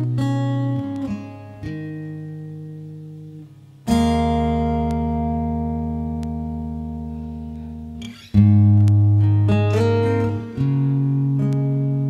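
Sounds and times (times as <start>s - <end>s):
guitar chords strummed: 0.0s - 12.0s.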